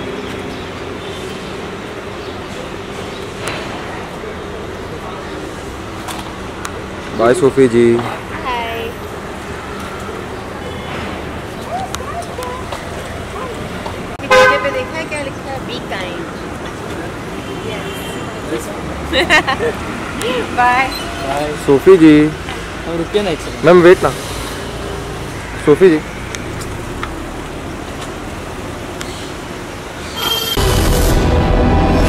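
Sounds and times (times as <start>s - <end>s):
street noise: 0.0s - 32.0s
voices: 0.4s - 29.8s
vehicle horn honk: 14.2s - 15.0s, 30.2s - 30.8s.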